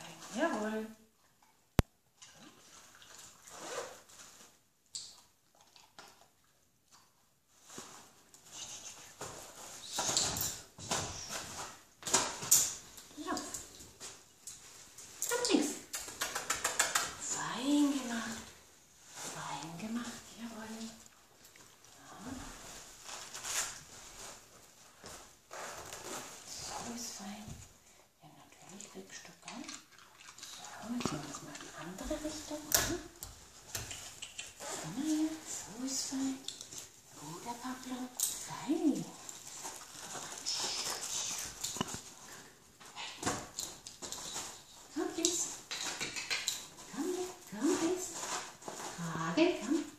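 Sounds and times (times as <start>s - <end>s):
rustling and movement: 2.1s - 6.2s, 7.0s - 49.9s
light clicks and rustles: 28.6s - 49.9s.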